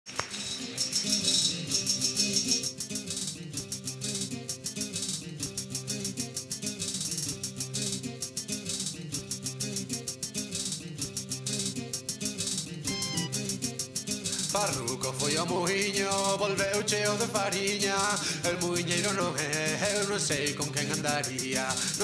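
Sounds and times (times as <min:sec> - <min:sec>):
acoustic guitar: 0:00.1 - 0:22.0
fast rattling percussion: 0:00.1 - 0:22.0.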